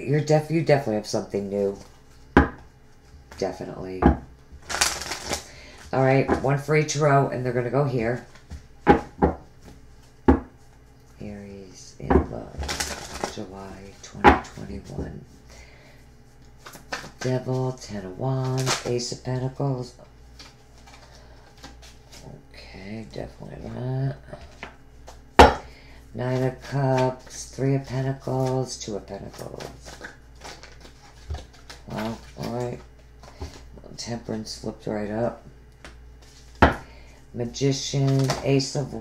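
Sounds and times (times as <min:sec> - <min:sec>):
cards being shuffled: 0:04.5 - 0:06.6, 0:12.4 - 0:15.0, 0:16.3 - 0:19.5, 0:20.3 - 0:22.3, 0:26.2 - 0:33.7, 0:35.8 - 0:36.7, 0:37.7 - 0:39.0.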